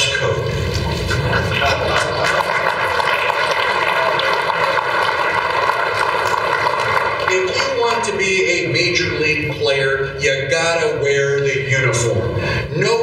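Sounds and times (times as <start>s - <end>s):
audience clapping: 0.4s - 8.2s
audience laughing: 0.9s - 5.7s.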